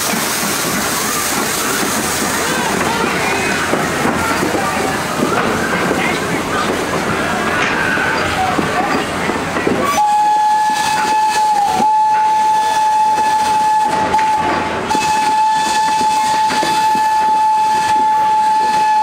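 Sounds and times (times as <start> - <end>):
rumble of passenger coaches rolling: 0.0 - 19.0
steam locomotive whistle blast: 9.8 - 19.0.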